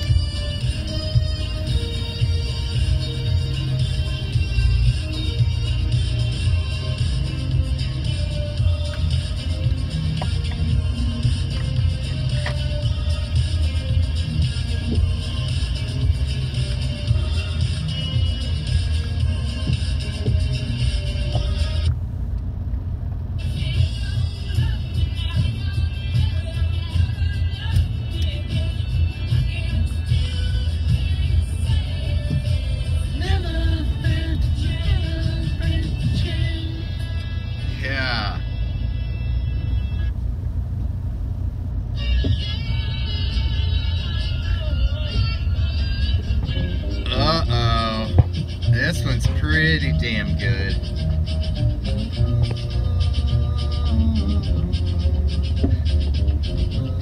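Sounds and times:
music with singing: 0.0s - 22.0s, 23.4s - 40.4s, 41.6s - 57.0s
car road and engine rumble: 0.0s - 57.0s.

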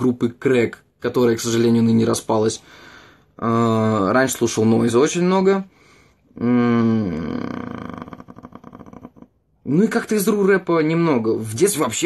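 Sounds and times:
man humming in hesitation: 6.4s - 9.3s.

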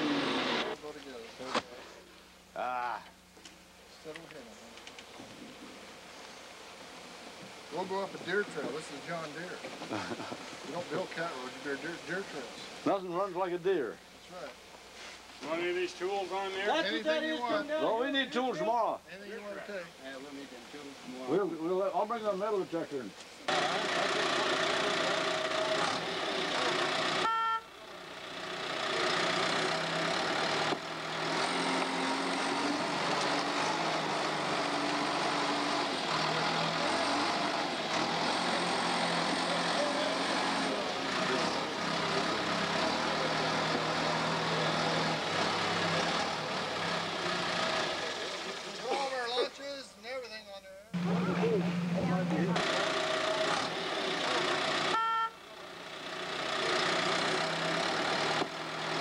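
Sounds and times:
bulldozer diesel engine running: 23.5s - 49.0s, 51.0s - 59.0s.

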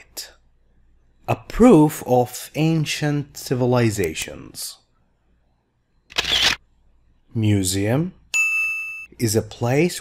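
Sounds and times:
camera shutter sound effect: 6.1s - 6.6s.

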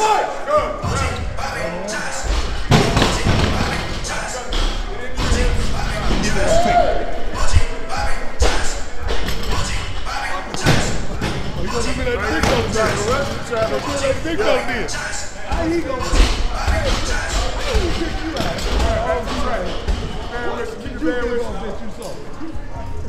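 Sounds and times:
loud voices calling out: 0.0s - 8.9s.

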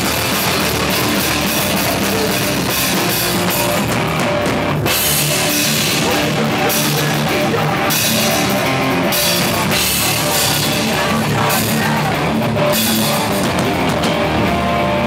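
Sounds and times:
driving drums and cymbals: 0.0s - 15.0s
heavy distorted guitars: 0.0s - 15.0s.

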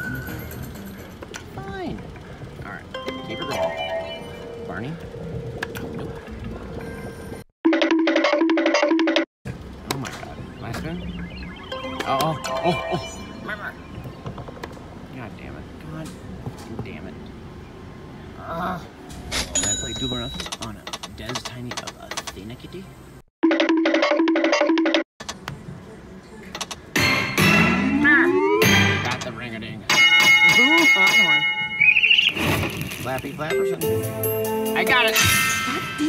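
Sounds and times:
slot machine held tone: 0.0s - 1.2s, 2.9s - 5.0s, 11.5s - 13.9s, 27.0s - 29.3s, 33.4s - 36.0s
thin beeps: 10.7s - 14.0s
busy casino noise: 26.1s - 29.4s.

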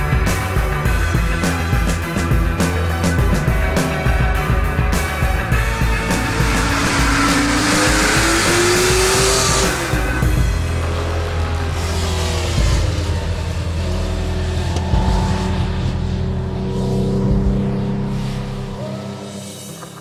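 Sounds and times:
music: 0.0s - 20.0s
car engine accelerating: 0.1s - 20.0s.

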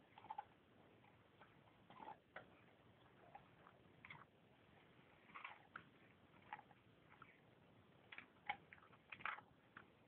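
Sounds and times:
dog teeth scraping on bone: 0.1s - 0.5s.

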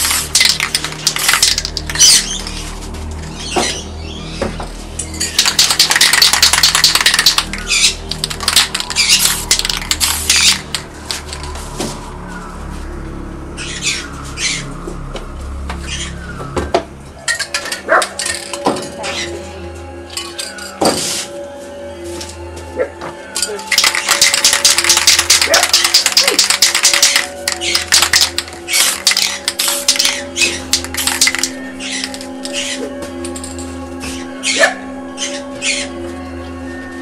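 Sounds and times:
spray cans clicking and knocking: 0.0s - 2.5s, 5.2s - 11.5s, 17.2s - 18.9s, 23.6s - 32.6s
spray paint can hissing: 0.0s - 2.5s, 5.3s - 11.6s, 23.7s - 32.7s.

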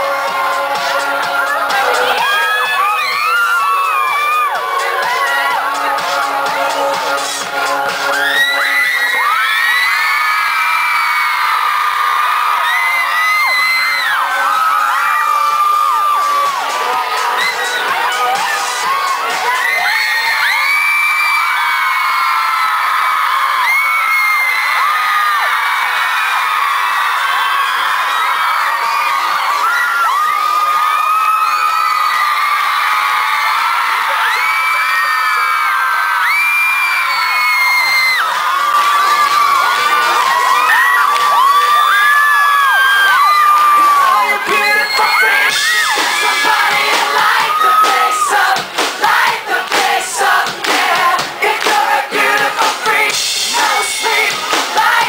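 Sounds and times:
crowd screaming and cheering: 0.0s - 55.0s.

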